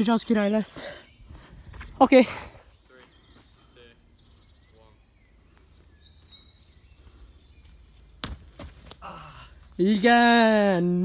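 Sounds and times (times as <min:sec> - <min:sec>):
person falling onto tarmac: 0:08.2 - 0:09.0.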